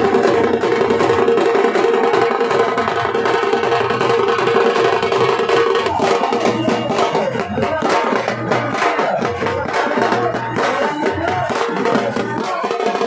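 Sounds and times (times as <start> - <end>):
fast dense drumming: 0.0 - 13.0.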